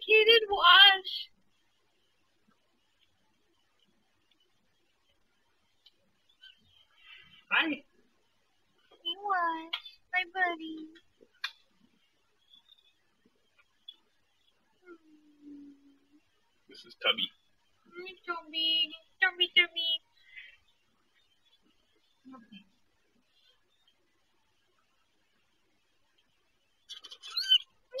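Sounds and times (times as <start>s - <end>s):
woman humming: 14.8s - 16.2s.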